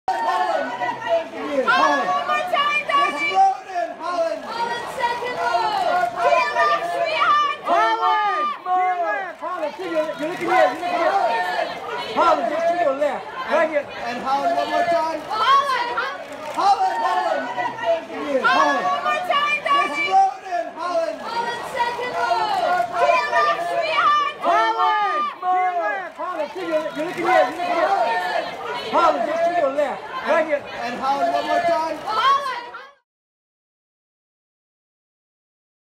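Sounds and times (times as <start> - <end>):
photographers shouting: 0.1 - 32.9.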